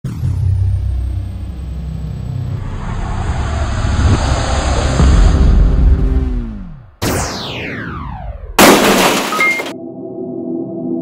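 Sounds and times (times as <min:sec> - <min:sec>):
deep rumble: 0:00.1 - 0:07.0
whooshing swell: 0:02.1 - 0:06.6.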